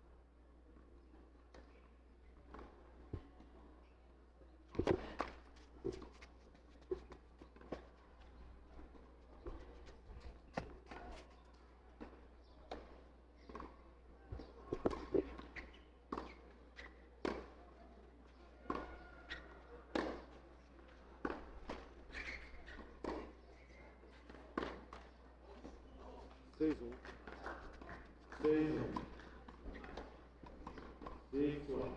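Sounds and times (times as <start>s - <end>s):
footsteps on clay court: 0.7s - 31.9s
tennis ball bouncing: 4.7s - 11.2s, 12.0s - 13.8s, 14.4s - 17.6s, 18.6s - 25.9s, 26.8s - 31.9s.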